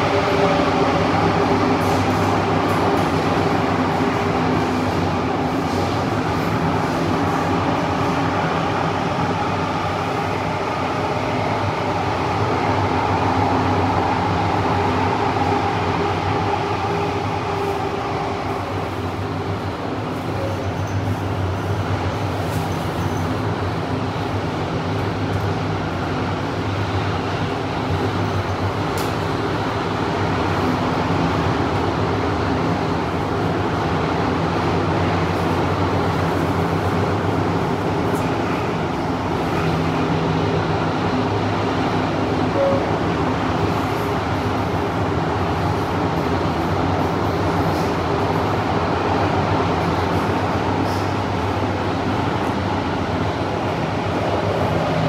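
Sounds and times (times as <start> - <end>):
low hum inside metro train: 0.0 - 55.0
wheels rumbling on rail: 0.0 - 55.0.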